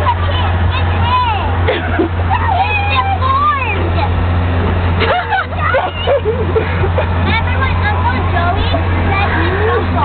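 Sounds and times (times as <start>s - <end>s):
high-pitched young voices talking: 0.0s - 1.6s, 2.2s - 4.2s, 5.3s - 10.0s
steady low hum: 0.0s - 10.0s.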